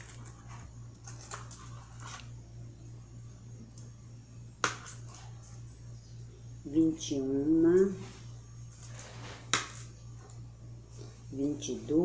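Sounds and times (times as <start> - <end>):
steady low hum: 0.0 - 12.0
faint scrapes: 8.0 - 9.5.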